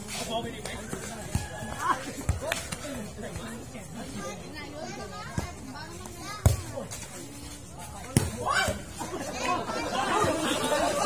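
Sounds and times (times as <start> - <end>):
players shouting and chattering: 0.0 - 11.0.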